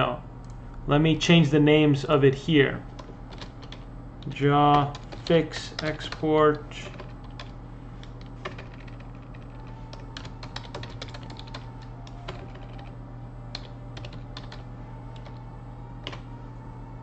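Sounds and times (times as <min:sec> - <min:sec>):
low hum: 0:00.0 - 0:17.0
typing on computer keyboard: 0:03.0 - 0:03.8, 0:04.7 - 0:12.9, 0:13.5 - 0:14.6, 0:15.2 - 0:15.4, 0:16.0 - 0:16.2.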